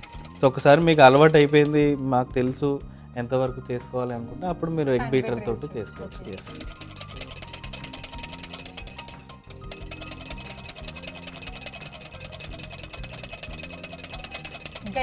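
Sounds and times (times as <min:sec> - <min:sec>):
whisk beating in glass bowl: 0:00.0 - 0:01.8, 0:06.0 - 0:15.0
background music: 0:00.0 - 0:15.0.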